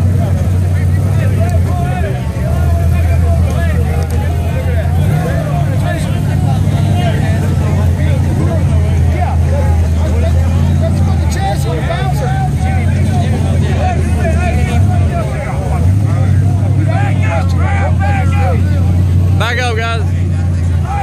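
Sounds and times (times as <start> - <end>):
crowd shouting and cheering: 0.0 - 21.0
engines revving hard: 0.0 - 21.0.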